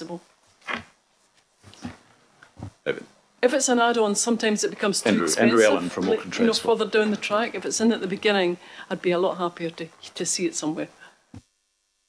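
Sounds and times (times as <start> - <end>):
person speaking: 5.0 - 8.5.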